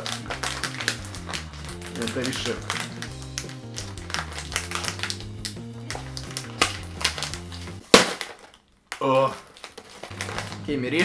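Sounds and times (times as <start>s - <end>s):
background music: 0.0s - 7.9s, 10.1s - 11.0s
chip bag crinkling: 0.0s - 11.0s.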